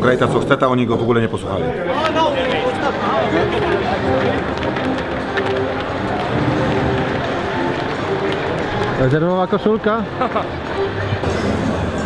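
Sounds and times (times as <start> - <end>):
stadium crowd din: 0.0 - 12.0
music playing: 1.6 - 12.0.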